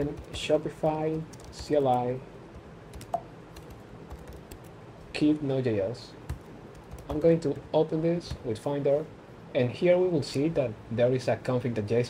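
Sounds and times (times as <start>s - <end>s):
computer keyboard typing: 0.0s - 4.7s, 6.3s - 7.6s.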